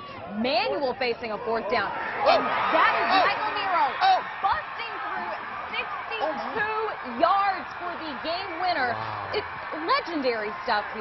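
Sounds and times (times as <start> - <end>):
crowd din: 0.0 - 11.0
voices shouting: 1.2 - 11.0.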